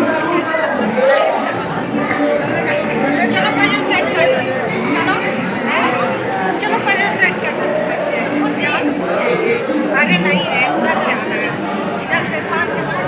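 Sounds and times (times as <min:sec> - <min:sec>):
crowd chatter in hall: 0:00.0 - 0:13.0.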